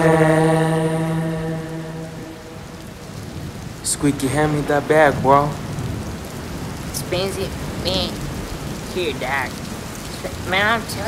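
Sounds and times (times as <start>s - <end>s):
held sung note: 0.0s - 3.0s
rain hissing: 0.0s - 11.0s.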